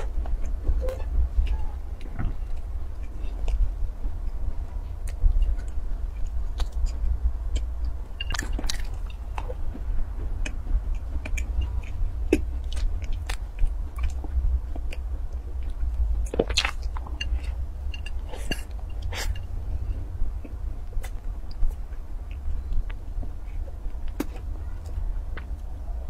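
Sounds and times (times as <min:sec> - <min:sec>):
steady low hum: 0:00.0 - 0:26.0
person chewing with wet mouth clicks: 0:05.0 - 0:19.5.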